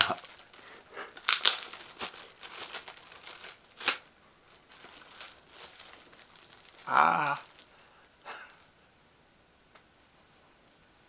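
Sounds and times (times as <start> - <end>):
packaging crinkling: 0.0 - 7.9.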